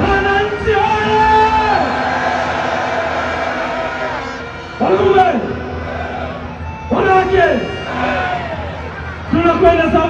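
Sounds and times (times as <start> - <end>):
man shouting through loudspeaker: 0.0 - 2.2, 3.6 - 10.0
crowd noise: 0.0 - 10.0.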